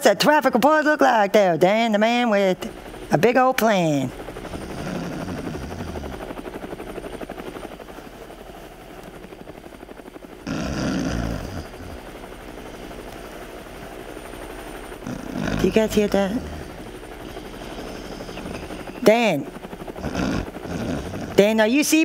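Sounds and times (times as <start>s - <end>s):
helicopter rotor chopping: 0.0s - 22.0s.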